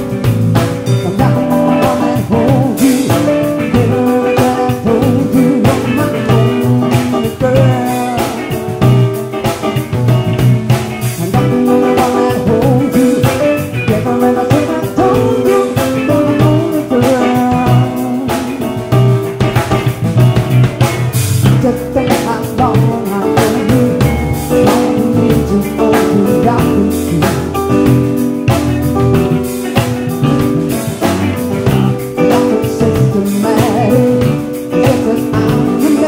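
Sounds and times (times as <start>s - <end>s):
drum kit steady beat: 0.0s - 36.0s
electric bass: 0.0s - 36.0s
electric guitar: 0.0s - 36.0s
keyboard chords: 0.0s - 36.0s
woman singing: 1.0s - 8.6s, 11.2s - 18.7s, 21.5s - 28.0s, 32.2s - 36.0s.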